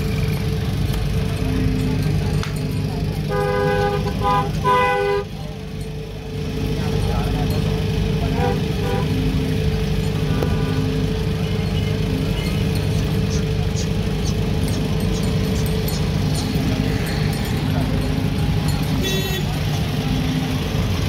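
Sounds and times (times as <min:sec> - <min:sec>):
crowd chatter: 0:00.0 - 0:21.0
engine hum: 0:00.0 - 0:21.0
vehicle horn honking: 0:03.2 - 0:05.4, 0:08.2 - 0:09.5, 0:10.1 - 0:11.8, 0:18.6 - 0:20.3.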